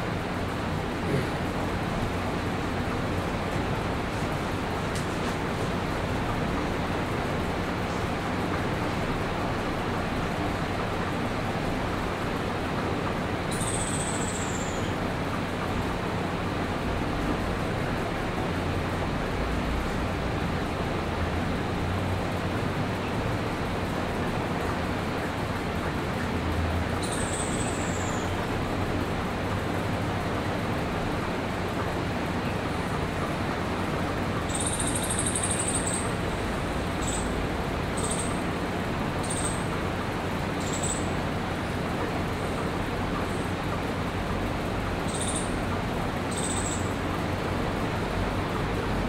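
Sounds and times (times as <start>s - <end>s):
rushing background noise: 0.0s - 49.0s.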